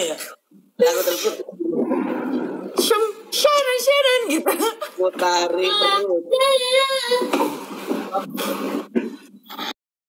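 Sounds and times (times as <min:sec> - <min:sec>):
breathy vocal sounds: 0:01.6 - 0:03.2.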